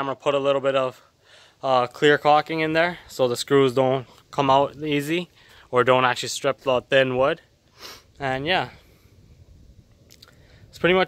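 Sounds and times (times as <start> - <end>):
man speaking: 0.0 - 7.5, 8.2 - 8.8, 10.8 - 11.0
faint low background noise: 0.0 - 11.0.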